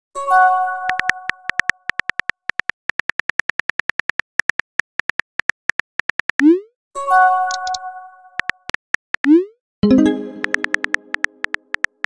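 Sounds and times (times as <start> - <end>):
keyboard taps clicking: 7.5 - 7.8, 10.4 - 12.0.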